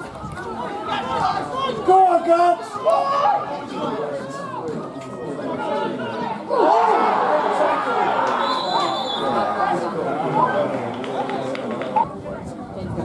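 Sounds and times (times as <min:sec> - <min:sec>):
voices shouting and calling: 0:00.0 - 0:12.6.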